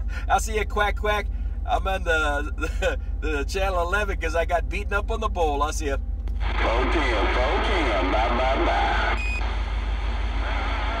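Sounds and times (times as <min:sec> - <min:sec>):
low hum: 0:00.0 - 0:11.0
faint warbling radio voices: 0:06.4 - 0:09.2, 0:10.2 - 0:11.0
radio beep: 0:06.4 - 0:09.5
radio static hiss: 0:06.4 - 0:11.0.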